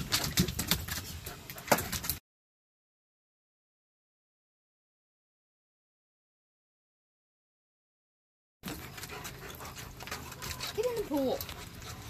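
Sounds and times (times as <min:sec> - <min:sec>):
dog panting: 0:08.6 - 0:12.0.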